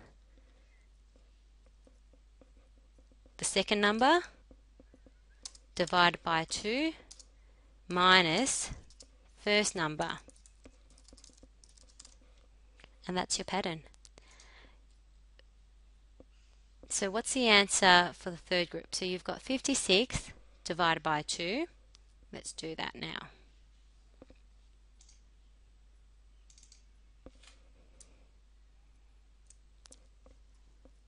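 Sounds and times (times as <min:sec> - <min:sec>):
computer mouse clicks: 0:04.8 - 0:06.0, 0:07.0 - 0:07.3, 0:08.8 - 0:09.1, 0:10.2 - 0:12.2, 0:25.0 - 0:25.2, 0:26.4 - 0:28.1, 0:29.4 - 0:31.0.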